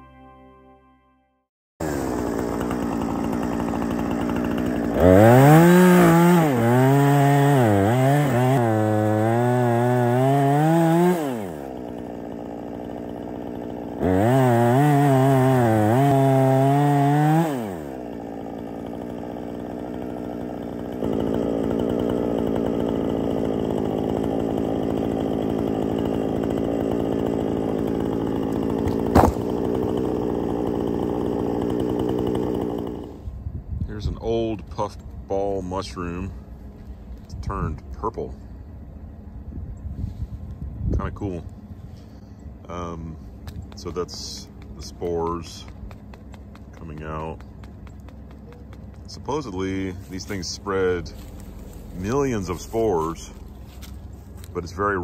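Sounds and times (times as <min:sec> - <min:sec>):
chainsaw cutting wood: 0:01.8 - 0:33.4, 0:41.1 - 0:55.0.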